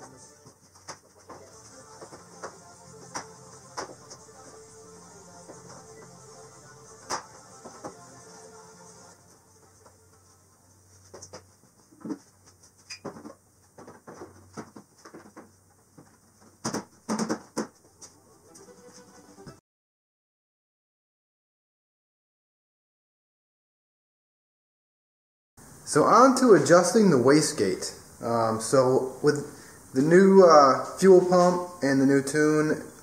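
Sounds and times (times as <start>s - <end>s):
faint music: 0.0s - 12.8s, 17.7s - 19.6s, 25.8s - 33.0s
plastic panels knocking and clicking: 13.0s - 17.8s.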